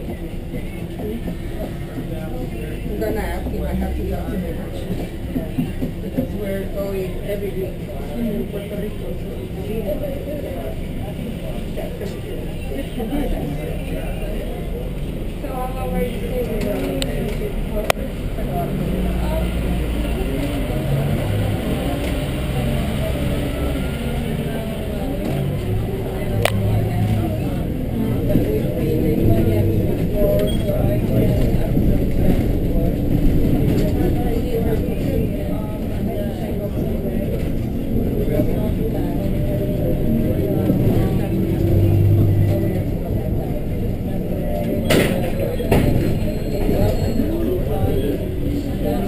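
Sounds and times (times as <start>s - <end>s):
bus engine running: 0.0s - 49.0s
road noise inside bus: 0.0s - 49.0s.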